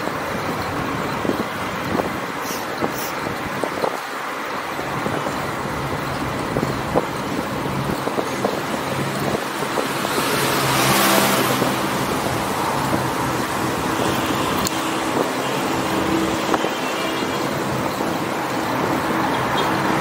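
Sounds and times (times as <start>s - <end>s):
road and traffic noise: 0.0s - 20.0s
motor vehicle passing: 8.8s - 20.0s.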